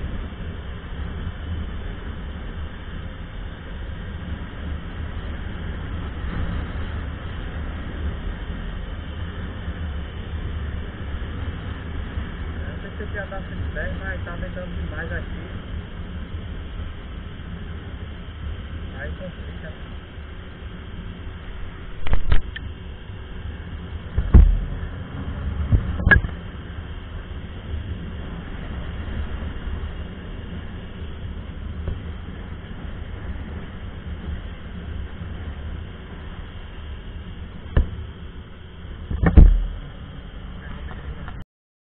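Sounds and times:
wind buffeting microphone: 0:00.0 - 0:18.9, 0:19.9 - 0:41.4.

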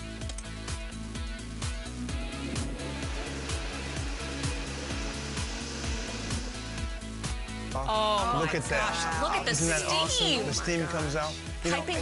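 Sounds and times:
background music with beat: 0:00.0 - 0:12.0
blender whirring: 0:02.1 - 0:07.6.

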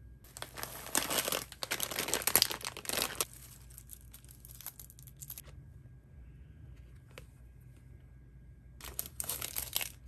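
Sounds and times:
packaging crinkling and rustling: 0:00.3 - 0:05.4, 0:08.8 - 0:10.0.

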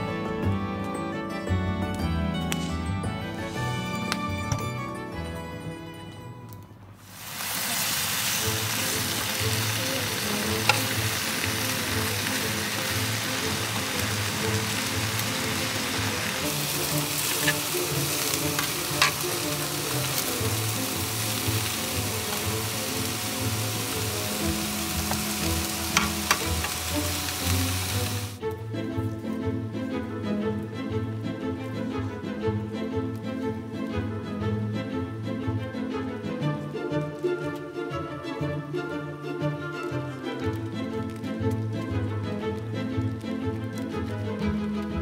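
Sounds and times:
food sizzling in a skillet: 0:07.0 - 0:28.4
utensil clicking against pan: 0:10.5 - 0:11.0, 0:16.8 - 0:20.2, 0:25.9 - 0:26.8.

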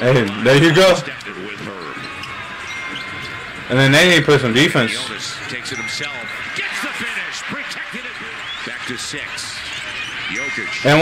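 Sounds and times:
commentator talking: 0:00.0 - 0:02.1, 0:03.7 - 0:11.0
arena crowd noise: 0:00.0 - 0:11.0.

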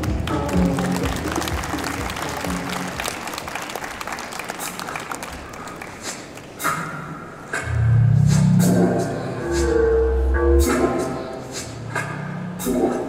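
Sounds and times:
beat-driven music: 0:00.0 - 0:03.2, 0:07.5 - 0:13.0
audience applauding: 0:00.0 - 0:06.6.

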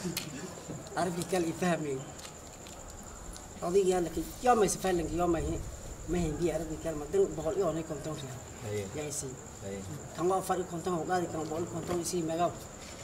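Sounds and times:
crickets chirping: 0:00.0 - 0:13.0.

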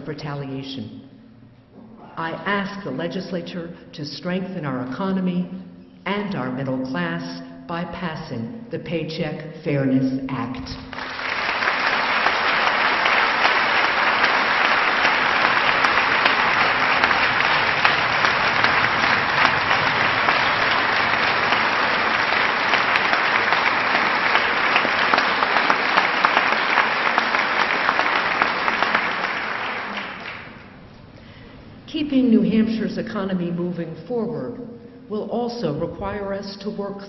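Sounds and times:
large crowd applauding: 0:10.9 - 0:30.8.

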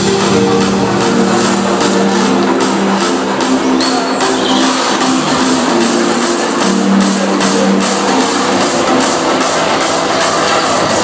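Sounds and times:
hardstyle dance music: 0:00.0 - 0:11.0.

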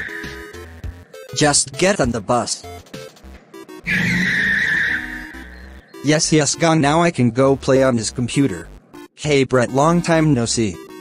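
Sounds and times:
tyre screech: 0:03.9 - 0:05.4.

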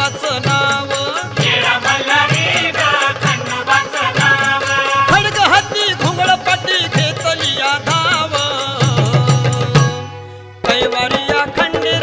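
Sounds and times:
steady drum beat: 0:00.0 - 0:10.1
devotional song: 0:00.0 - 0:12.0.

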